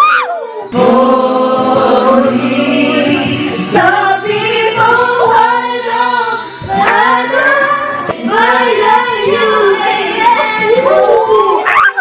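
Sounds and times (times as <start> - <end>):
woman singing into microphone: 0.5 - 12.0.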